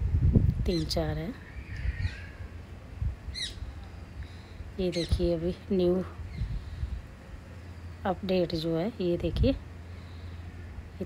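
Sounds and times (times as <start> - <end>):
low background rumble: 0.0 - 11.0
small bird chirping: 0.7 - 2.5, 3.3 - 5.6.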